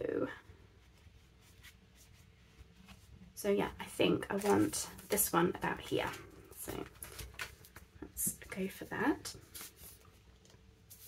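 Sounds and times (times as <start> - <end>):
paper envelopes rustling: 3.8 - 11.0.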